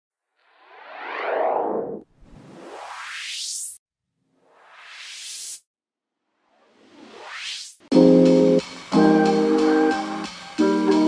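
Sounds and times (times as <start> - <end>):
synthesized whoosh: 0.3 - 5.7.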